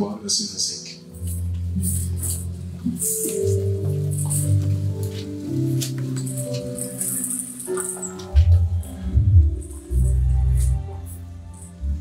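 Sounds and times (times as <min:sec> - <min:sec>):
electronic keyboard chords: 0:01.0 - 0:12.0.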